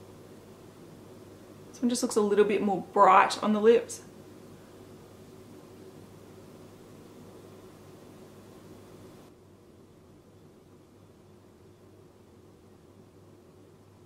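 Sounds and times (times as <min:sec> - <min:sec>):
low hiss: 0:00.0 - 0:14.0
low hum: 0:00.0 - 0:14.0.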